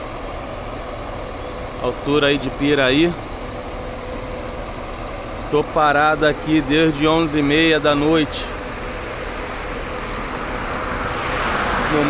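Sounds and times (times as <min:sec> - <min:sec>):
vehicle engine hum: 0:00.0 - 0:12.0.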